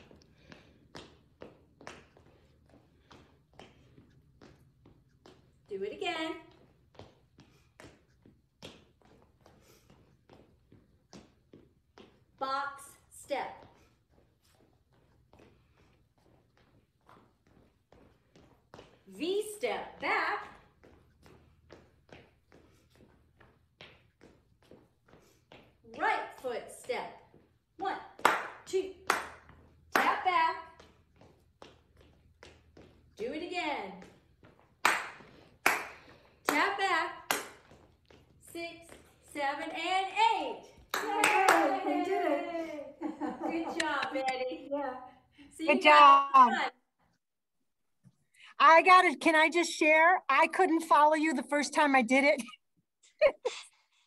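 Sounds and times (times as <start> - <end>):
dance footsteps on hardwood floor: 0.0 - 44.7.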